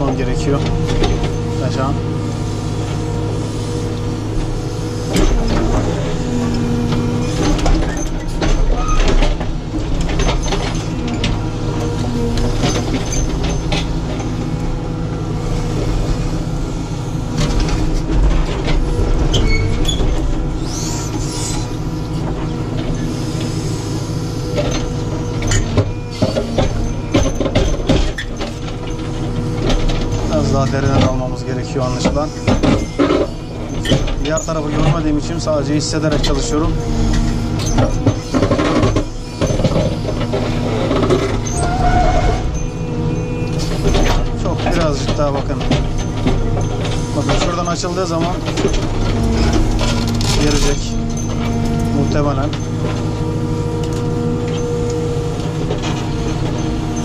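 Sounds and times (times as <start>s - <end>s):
diesel engine running: 0.0s - 57.0s.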